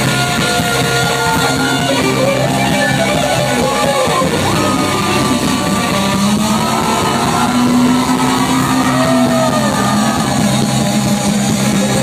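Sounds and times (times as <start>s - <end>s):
distorted live rock band: 0.0s - 12.0s
electric guitar note bending: 0.0s - 12.0s.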